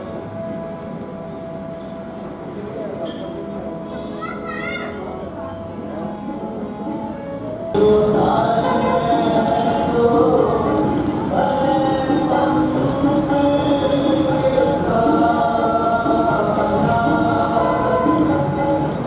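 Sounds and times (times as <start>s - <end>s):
musical accompaniment: 5.4s - 19.0s
group singing a hymn: 7.8s - 19.0s.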